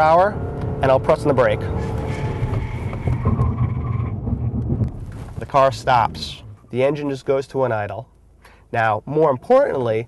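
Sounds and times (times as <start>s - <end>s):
high engine whine: 0.0s - 7.2s
engine and road rumble: 0.0s - 10.0s.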